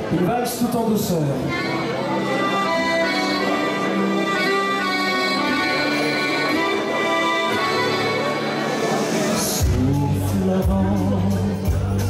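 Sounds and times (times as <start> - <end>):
accordion playing a waltz: 1.4 - 12.0.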